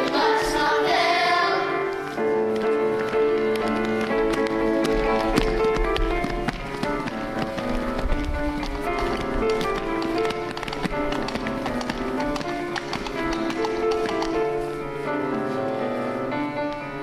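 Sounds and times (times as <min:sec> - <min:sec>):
piano accompaniment: 0:00.0 - 0:17.0
children running on stage floor: 0:02.0 - 0:14.8.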